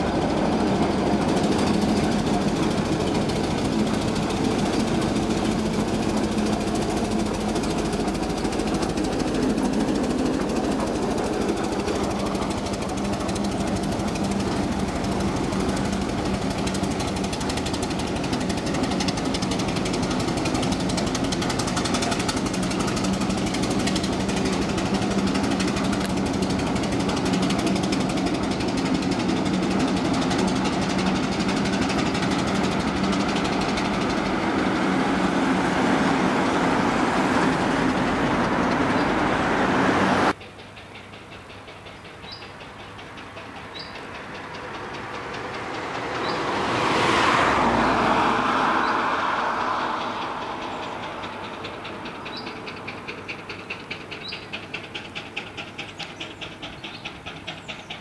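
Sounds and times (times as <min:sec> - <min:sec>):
vehicle engine knocking: 0:00.0 - 0:58.0.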